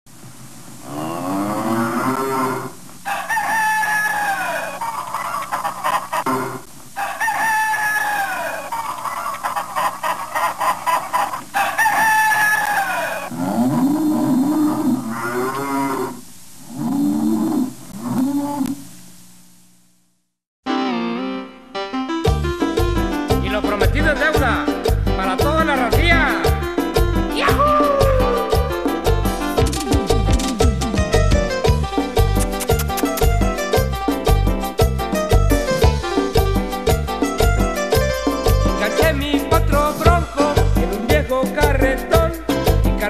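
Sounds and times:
cartoon barnyard animal calls: 0.9s - 18.8s, 27.4s - 28.8s.

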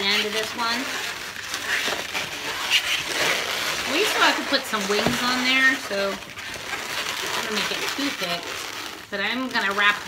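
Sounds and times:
balloons rubbing and squeaking: 0.0s - 10.0s.

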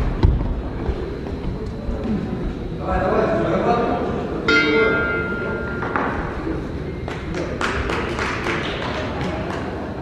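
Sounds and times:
ring bell: 4.5s - 6.0s.

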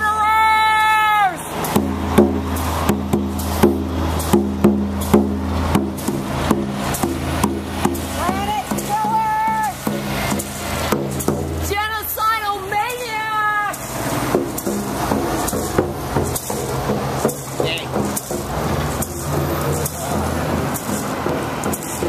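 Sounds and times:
heavy truck engines running: 0.0s - 22.0s
struck percussion beat: 1.4s - 22.0s.

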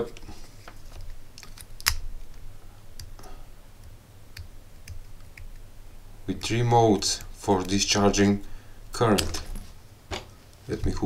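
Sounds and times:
small electronics being handled: 0.1s - 3.2s.

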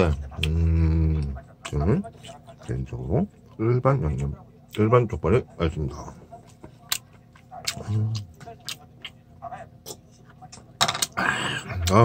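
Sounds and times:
person chewing close up: 0.0s - 4.8s, 6.4s - 10.7s
closed-mouth hum: 0.0s - 12.0s.

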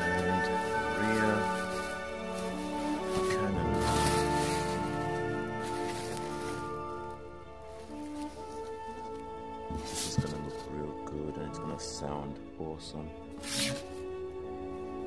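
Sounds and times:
plastic packaging rustle: 0.0s - 9.2s
background music with held notes: 0.0s - 15.0s.

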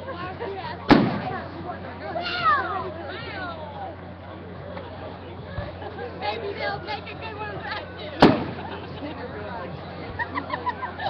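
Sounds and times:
firework bang: 0.9s - 1.4s, 8.2s - 8.7s.

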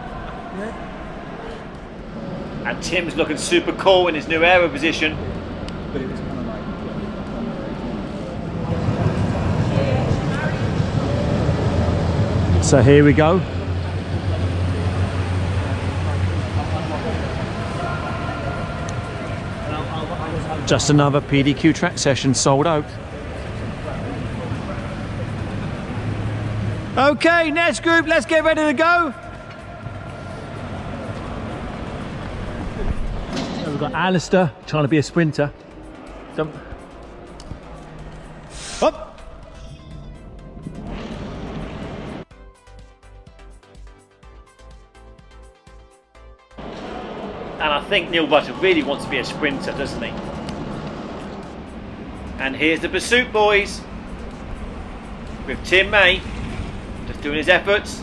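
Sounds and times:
rushing noise: 0.0s - 34.0s, 35.7s - 39.3s, 46.6s - 58.0s
background noise wash: 0.0s - 34.6s
distant chatter: 0.0s - 42.2s, 46.6s - 58.0s
background music: 0.0s - 58.0s.

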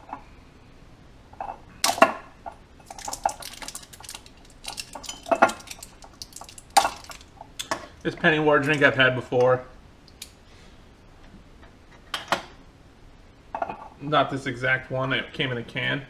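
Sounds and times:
glass bottle clinking: 2.9s - 7.2s.

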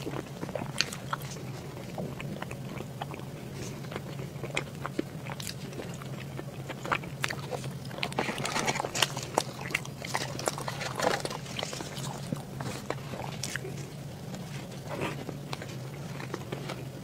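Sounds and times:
chewing and mouth sounds: 0.0s - 17.0s.

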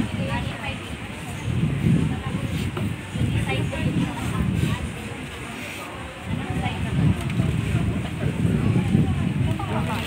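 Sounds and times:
low rumble on microphone: 0.0s - 10.0s
people talking indistinctly: 0.0s - 10.0s.

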